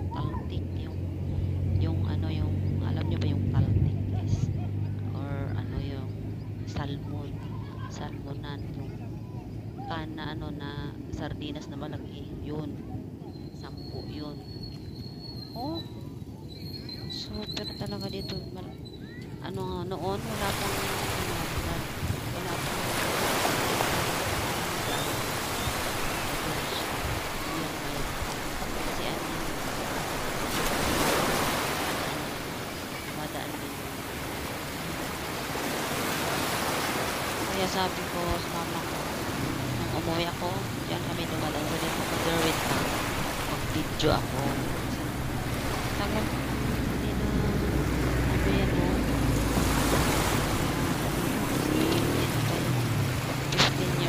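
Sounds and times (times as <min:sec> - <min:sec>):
water lapping at rocky shore: 0:19.8 - 0:54.0
wind rushing over microphone: 0:20.0 - 0:54.0.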